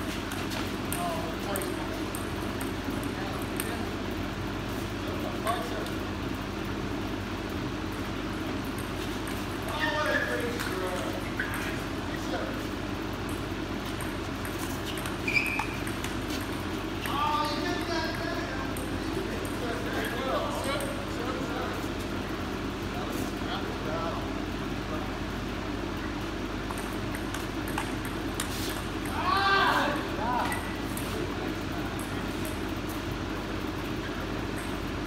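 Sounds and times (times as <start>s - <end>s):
steady room hum: 0.0s - 35.0s
table tennis ball clicking: 26.7s - 29.2s.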